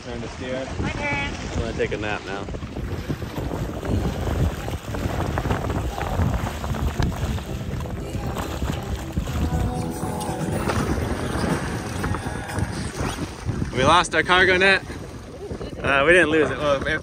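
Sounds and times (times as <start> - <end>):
water slapping against hulls: 0.0 - 17.0
wind buffeting microphone: 0.0 - 17.0
background music: 7.5 - 13.0.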